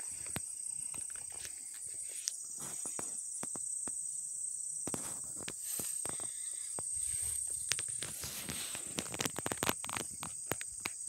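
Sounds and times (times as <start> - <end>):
high-pitched insect drone: 0.0 - 11.0
footsteps through grass: 7.0 - 10.7.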